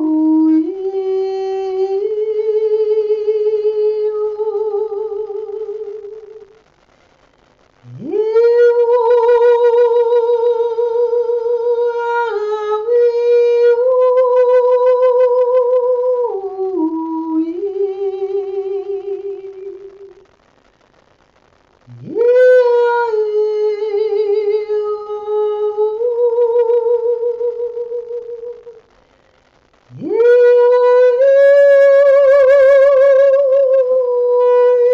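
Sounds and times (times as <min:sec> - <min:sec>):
woman singing long notes: 0:00.0 - 0:06.6, 0:07.8 - 0:20.2, 0:21.9 - 0:28.8, 0:29.9 - 0:34.9.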